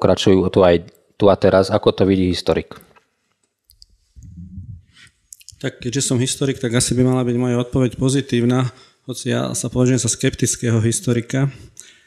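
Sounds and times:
faint mouth clicks: 3.7 - 4.6, 5.3 - 5.7
man humming hmm: 4.2 - 5.0
man breathing in: 11.6 - 12.0.

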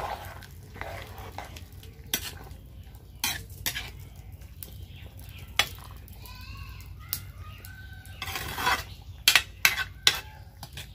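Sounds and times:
metal spoon scraping a pan: 0.0 - 4.2, 8.1 - 10.9
low sizzle: 0.0 - 10.9.

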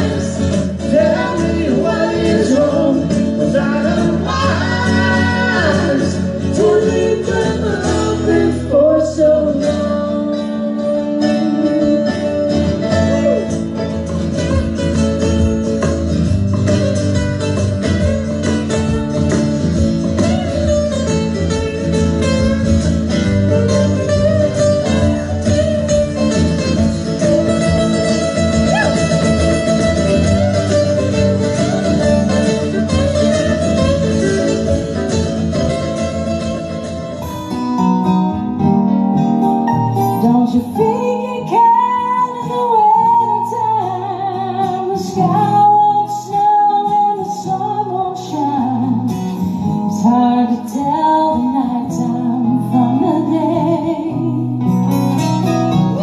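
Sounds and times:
woman singing: 0.0 - 13.4, 40.0 - 54.8
acoustic guitars strummed and picked: 0.0 - 56.0.

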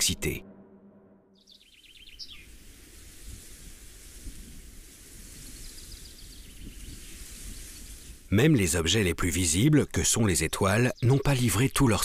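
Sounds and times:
low rumble: 0.0 - 2.0
birds chirping: 1.2 - 2.6, 5.6 - 12.0
steady hiss: 2.5 - 8.3.

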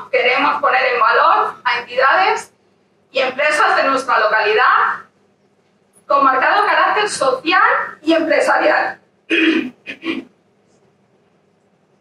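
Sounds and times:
woman coughing into microphone: 9.3 - 10.3.

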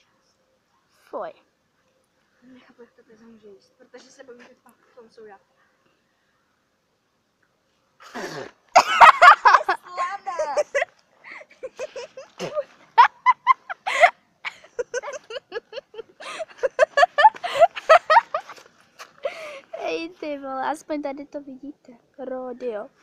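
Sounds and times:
girls gagging and coughing: 8.1 - 9.7, 11.6 - 18.4.

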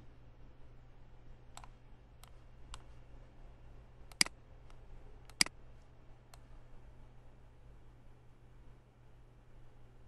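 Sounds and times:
low steady hum: 0.0 - 10.0
faint mouse clicks: 1.5 - 3.0, 4.1 - 5.6, 6.3 - 6.5.

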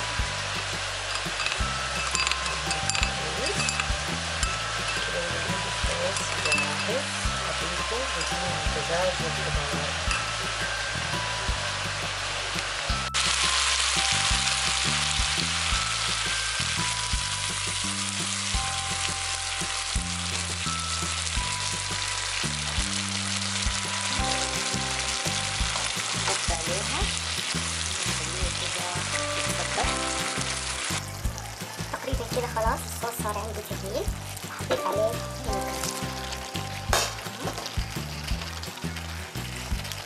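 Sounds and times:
background music: 0.0 - 40.0
food sizzling in a wok: 0.0 - 40.0.

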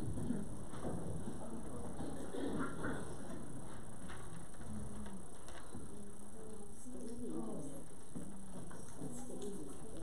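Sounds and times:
low voice murmuring: 0.0 - 3.8.

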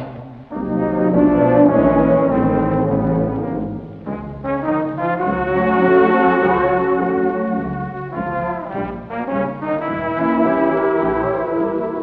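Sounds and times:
brass sustained chords: 0.0 - 12.0.

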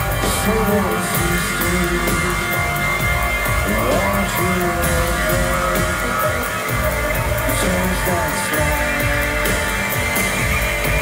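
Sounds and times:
rock band playing live: 0.0 - 11.0.

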